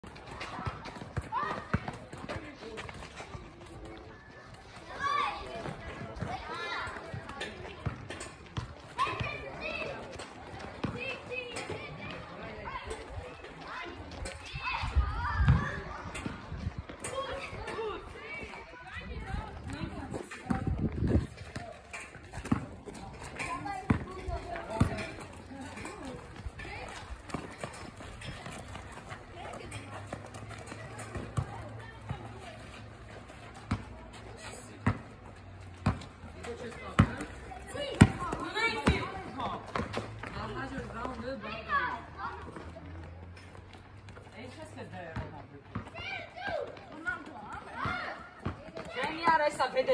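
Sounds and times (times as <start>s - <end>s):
ball bouncing on pavement: 0.0s - 4.0s, 4.6s - 49.9s
children shouting at play: 0.3s - 2.1s, 3.8s - 7.5s, 8.9s - 19.7s, 45.8s - 49.3s.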